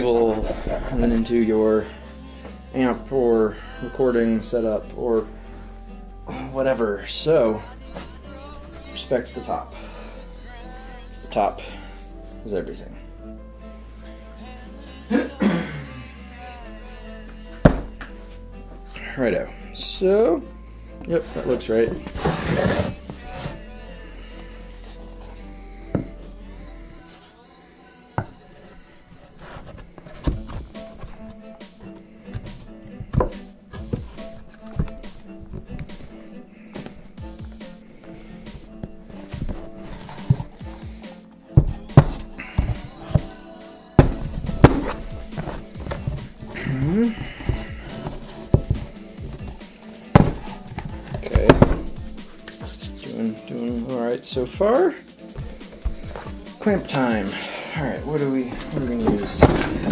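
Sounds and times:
background music: 0:00.0 - 0:59.9
sharp wooden thunks: 0:17.6 - 0:18.0, 0:32.4 - 0:36.0, 0:41.6 - 0:43.3, 0:44.0 - 0:46.3, 0:47.2 - 0:52.1.

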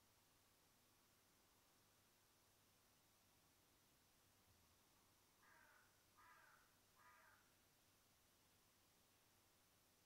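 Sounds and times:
faint harsh bird caws: 0:05.4 - 0:07.6.

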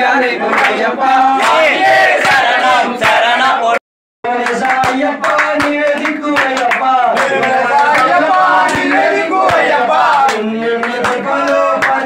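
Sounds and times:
men chanting devotional song: 0:00.0 - 0:12.0
hand claps: 0:00.5 - 0:00.8, 0:04.3 - 0:12.0.

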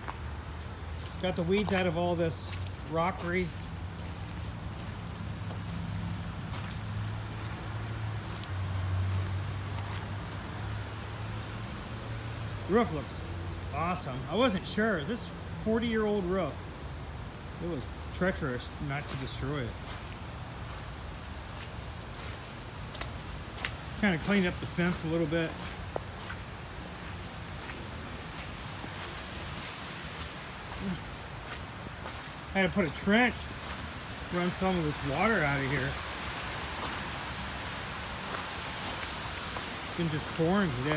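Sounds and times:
footsteps on wet gravel: 0:00.0 - 0:16.6, 0:17.4 - 0:40.9
rain hiss: 0:00.0 - 0:40.9.

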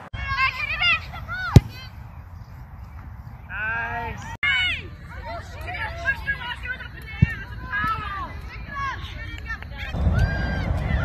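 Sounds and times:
outdoor field noise: 0:00.0 - 0:11.0.

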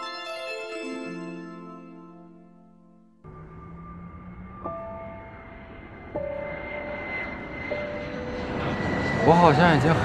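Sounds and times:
jet airliner flying overhead: 0:03.3 - 0:10.0.

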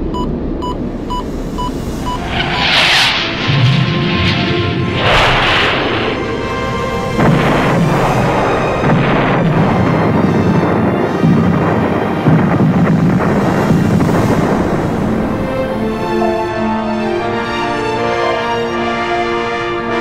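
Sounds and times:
dramatic music score: 0:00.1 - 0:20.0
explosions: 0:01.6 - 0:16.0.

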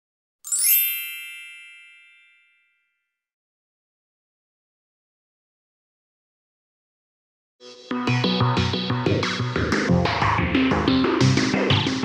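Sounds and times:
bright metallic chime: 0:00.5 - 0:02.9.

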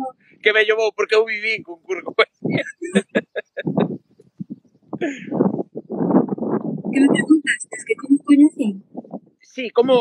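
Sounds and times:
person laughing: 0:02.5 - 0:04.0.

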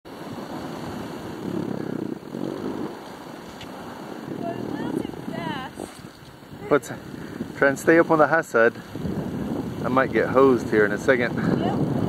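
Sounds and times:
wind on microphone: 0:00.1 - 0:12.0
sliding over snow: 0:00.2 - 0:08.2.

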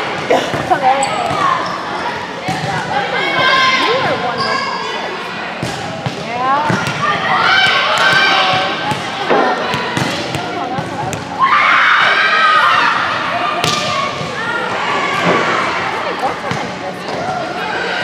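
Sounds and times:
girls calling out and chattering: 0:00.1 - 0:18.0
volleyballs bouncing and hit: 0:02.4 - 0:02.9, 0:05.6 - 0:11.4, 0:13.6 - 0:14.4.

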